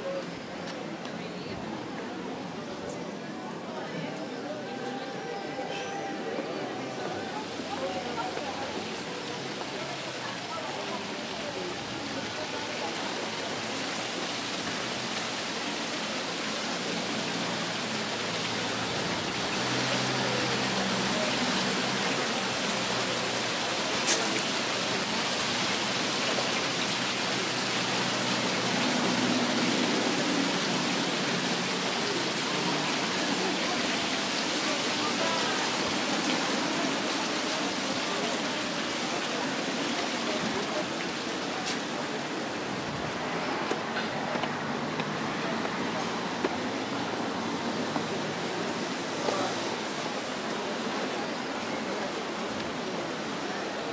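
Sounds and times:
fountain water splashing: 0:00.0 - 0:53.9.

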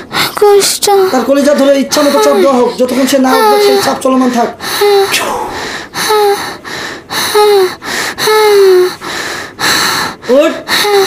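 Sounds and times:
woman gasping breaths: 0:04.6 - 0:11.0.

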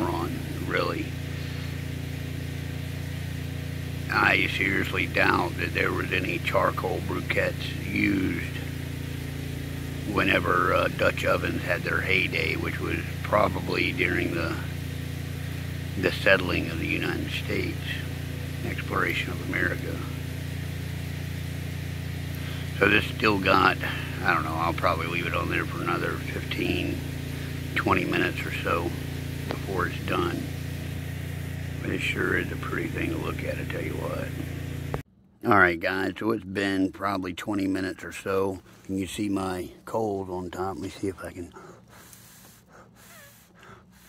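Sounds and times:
low background hum: 0:00.0 - 0:44.0
faint breathing: 0:01.2 - 0:01.9, 0:22.3 - 0:22.8, 0:23.8 - 0:24.2, 0:38.6 - 0:39.0, 0:41.5 - 0:44.0.

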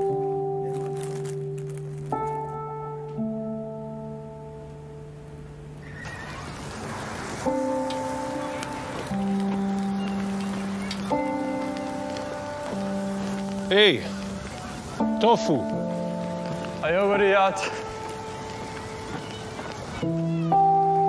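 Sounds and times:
barbecue hiss: 0:05.8 - 0:21.0.

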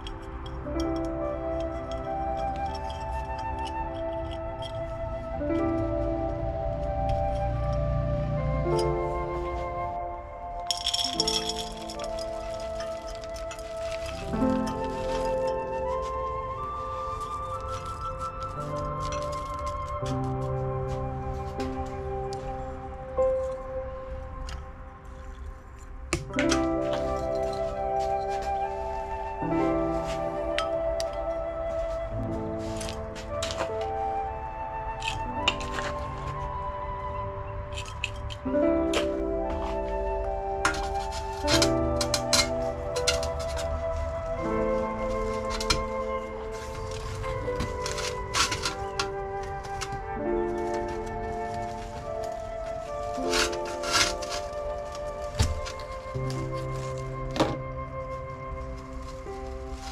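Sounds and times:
soil rattling into a pot: 0:00.0 - 0:05.3, 0:10.6 - 0:20.5, 0:25.2 - 0:31.3, 0:32.2 - 0:33.9, 0:34.9 - 0:36.6, 0:37.7 - 0:40.0, 0:40.6 - 0:59.9
calm background music: 0:00.0 - 0:59.9.

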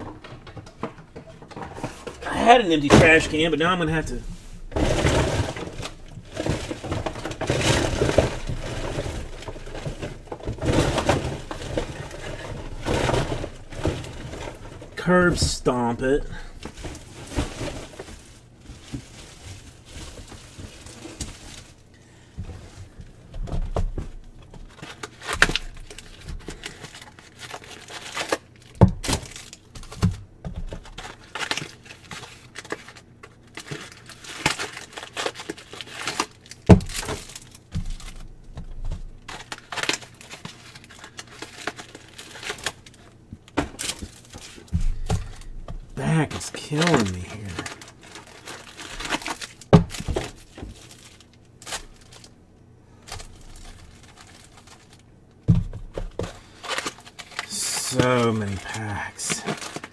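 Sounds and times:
packaging crinkling and tearing: 0:01.8 - 0:21.9, 0:24.2 - 0:52.4, 0:53.0 - 0:55.2, 0:55.9 - 0:59.9.

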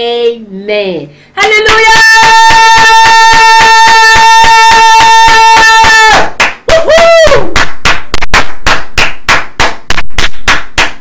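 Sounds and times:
fast rhythmic hand clapping: 0:02.6 - 0:11.0.

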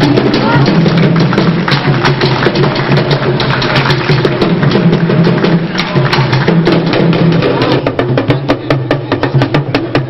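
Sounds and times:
percussion-led drum music: 0:00.0 - 0:10.0.

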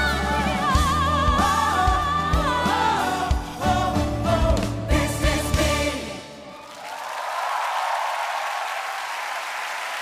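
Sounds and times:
studio audience applauding: 0:06.5 - 0:10.0.

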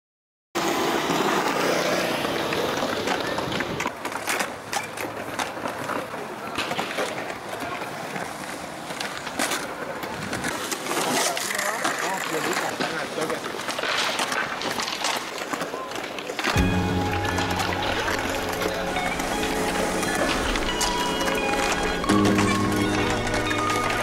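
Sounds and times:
skateboard clacking on concrete: 0:00.6 - 0:24.0
skateboard wheels rolling on concrete: 0:00.6 - 0:24.0.

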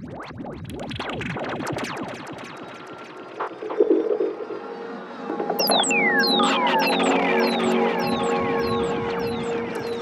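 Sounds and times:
falling synthesizer sweeps: 0:04.4 - 0:10.0
buzzing cluster of synth tones: 0:05.3 - 0:10.0.

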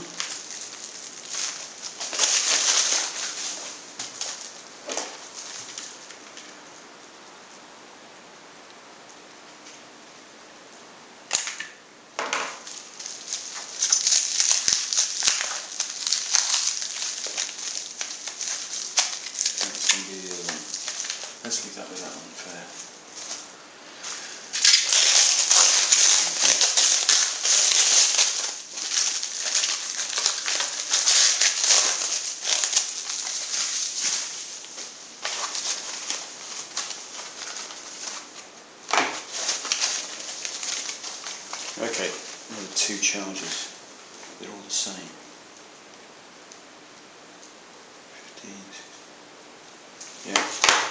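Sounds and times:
plastic film crinkling and tearing: 0:00.0 - 0:06.7, 0:12.5 - 0:44.9, 0:50.0 - 0:50.9.

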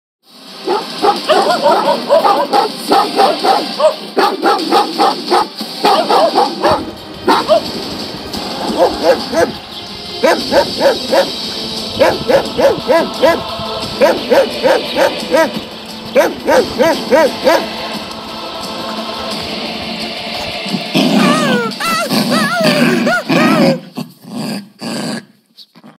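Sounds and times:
dog barking rapidly: 0:00.6 - 0:07.8, 0:08.6 - 0:09.6, 0:10.2 - 0:11.4, 0:12.0 - 0:17.8.

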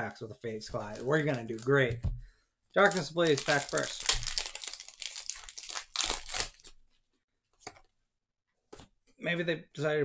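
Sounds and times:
foil wrapper tearing: 0:02.9 - 0:06.8.

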